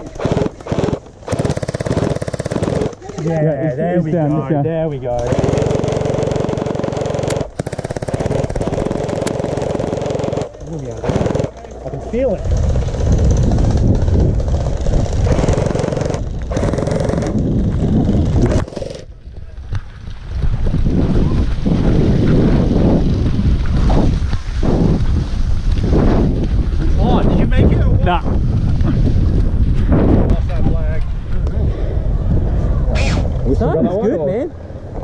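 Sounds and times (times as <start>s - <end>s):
wind and movement noise: 0.0s - 35.0s.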